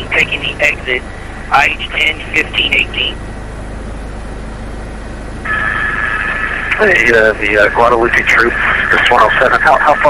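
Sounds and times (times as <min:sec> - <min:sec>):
helicopter noise through intercom: 0:00.0 - 0:03.2, 0:05.5 - 0:10.0.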